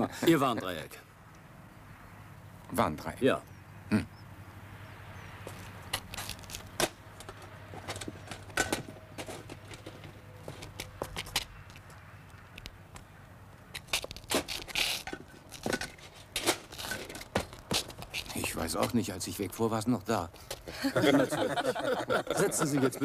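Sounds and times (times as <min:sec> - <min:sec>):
rummaging clicks and rustling: 0:05.5 - 0:12.7.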